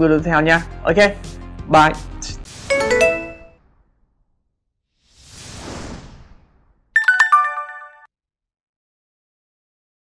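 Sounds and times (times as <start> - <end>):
descending chime: 2.7 - 3.5, 7.0 - 8.1
whoosh: 4.9 - 6.9.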